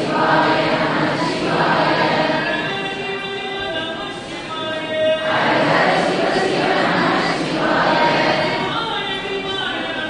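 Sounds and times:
voices chanting in unison: 0.0 - 2.7, 5.2 - 8.9.

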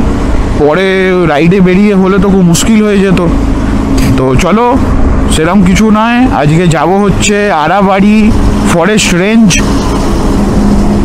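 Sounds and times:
motorcycle engine drone: 0.0 - 11.0
road and wind noise: 0.0 - 11.0.

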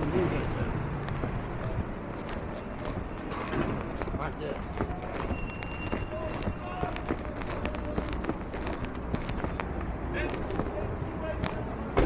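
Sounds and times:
indistinct voices: 0.0 - 11.8
city traffic rumble: 0.0 - 12.0
footsteps on concrete: 0.5 - 11.6.

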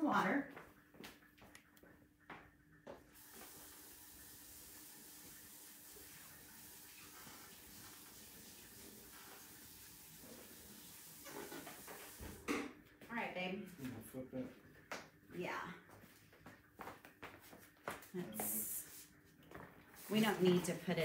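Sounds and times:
water tap running: 3.1 - 12.5.

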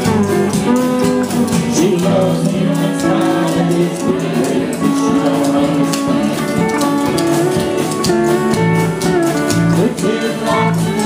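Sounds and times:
drums: 0.0 - 11.0
electric bass: 0.0 - 11.0
person singing: 0.0 - 11.0
strummed guitars: 0.0 - 11.0.

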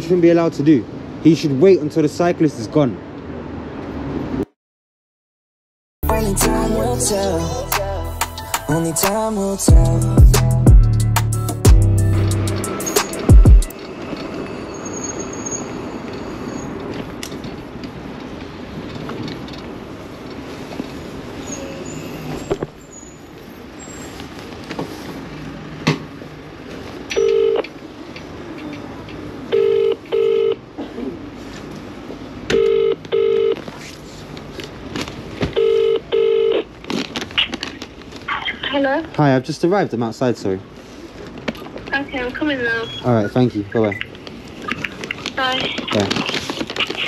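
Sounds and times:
street noise: 0.0 - 4.6, 6.0 - 47.0
phone ringback tone: 27.2 - 27.6, 29.5 - 30.6, 32.5 - 33.6, 35.6 - 36.7.

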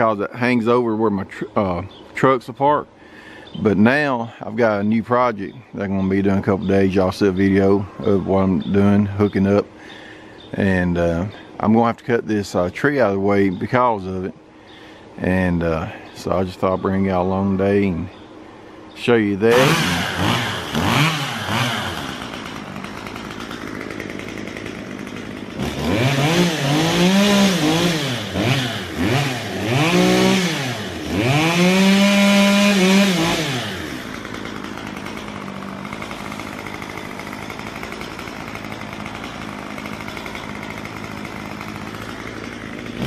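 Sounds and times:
chainsaw idling and revving: 0.0 - 43.0.

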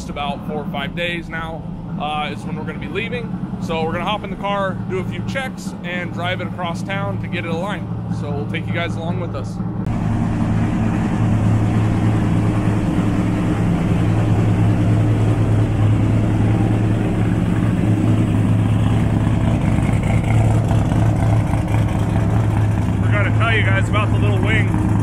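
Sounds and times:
car engine idling: 0.0 - 25.0.

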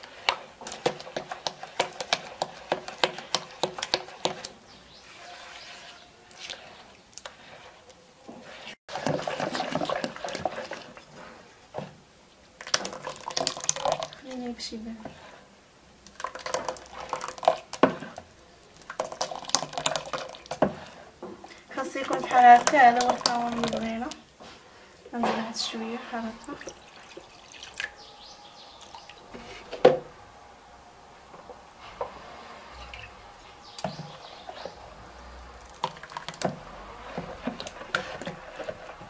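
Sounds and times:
batter sloshing and dripping: 0.0 - 12.0, 12.6 - 24.9, 25.5 - 29.6, 32.8 - 39.0
batter dribbling into a bowl: 12.6 - 14.4, 16.0 - 21.0, 21.8 - 24.2, 35.6 - 39.0.

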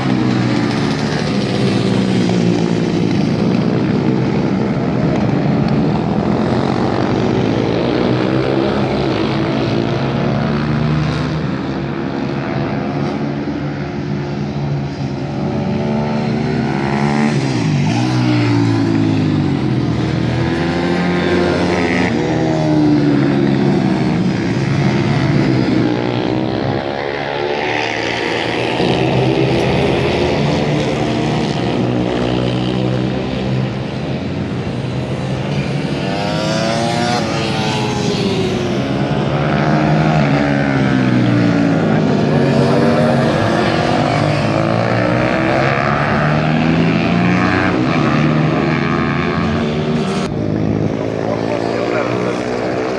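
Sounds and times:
racing motorcycle engine: 0.0 - 52.9.

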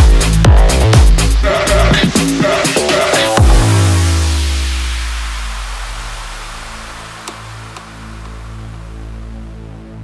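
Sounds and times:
held bass and synth notes: 0.0 - 10.0.

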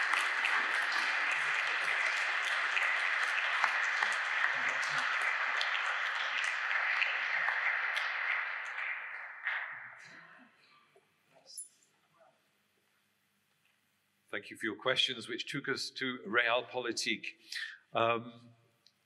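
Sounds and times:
audience applause: 0.0 - 10.3.

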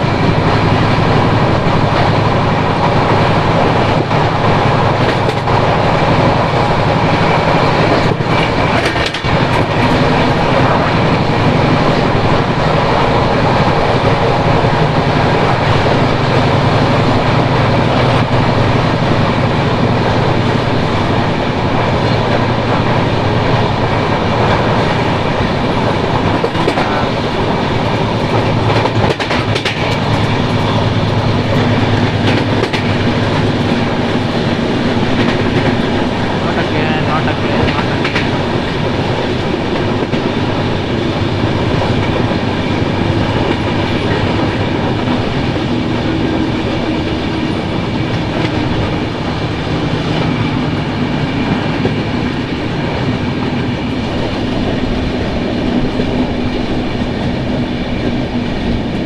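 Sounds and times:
clickety-clack of rail joints: 0.0 - 59.0
train wheels rumbling on rails: 0.0 - 59.0.

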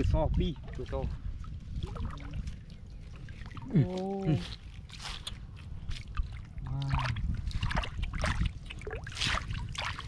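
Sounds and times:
water sloshing and trickling: 0.0 - 10.0
small splashes: 0.4 - 10.0.

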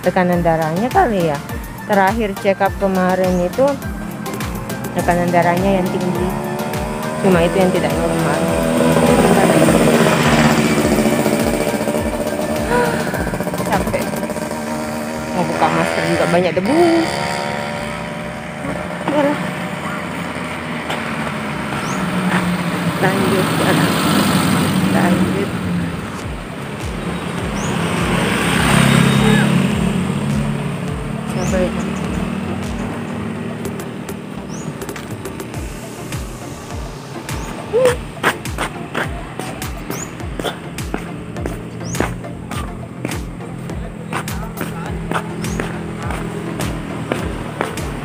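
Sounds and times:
vehicles passing on road: 0.0 - 48.0.

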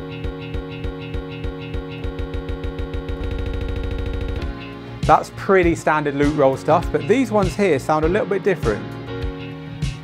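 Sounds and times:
stuttering music loop rolls: 0.0 - 4.6.

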